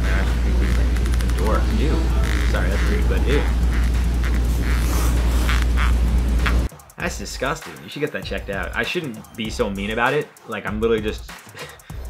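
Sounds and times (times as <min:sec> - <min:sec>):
arm joint creaking: 0:00.0 - 0:06.7
deep low hum: 0:00.0 - 0:06.7.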